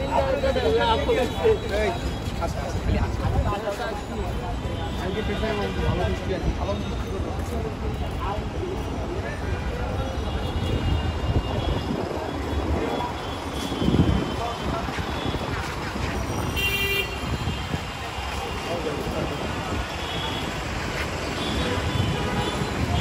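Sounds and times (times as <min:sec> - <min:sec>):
chatter of passers-by: 0:00.0 - 0:23.0
vehicle horn toot: 0:16.5 - 0:17.7.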